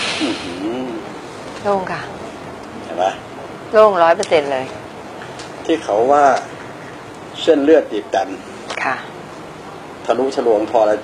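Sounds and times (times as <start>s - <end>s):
woman speaking: 1.6s - 2.2s, 3.7s - 4.8s, 8.7s - 9.2s.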